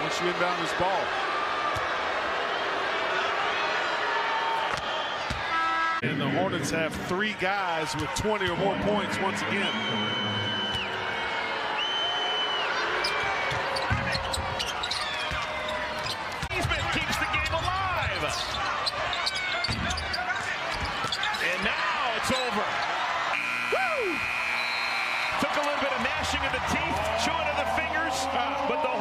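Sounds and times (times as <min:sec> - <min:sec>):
crowd cheering: 0:00.0 - 0:29.0
crowd noise: 0:00.0 - 0:29.0
game-ending horn: 0:05.5 - 0:06.1, 0:23.4 - 0:25.2
sneakers squeaking on court: 0:13.0 - 0:21.6.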